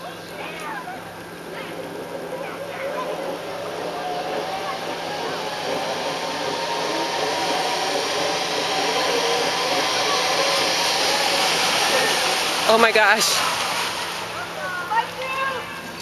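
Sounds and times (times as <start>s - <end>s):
zip line trolleys whirring: 0.0s - 16.0s.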